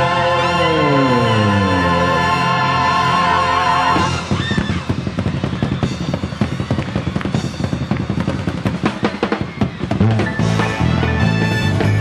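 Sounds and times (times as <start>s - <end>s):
sustained orchestral chord: 0.0s - 4.1s
drum kit rolling run with cymbals: 0.0s - 12.0s.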